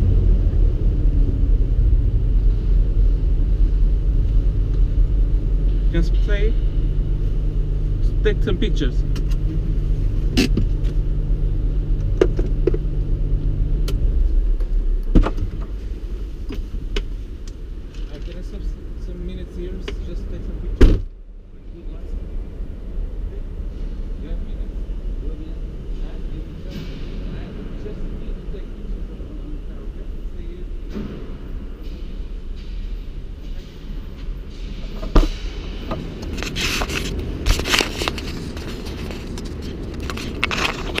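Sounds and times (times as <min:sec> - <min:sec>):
low steady rumble: 0:00.0 - 0:41.0
camera handling rustling and thuds: 0:36.0 - 0:41.0.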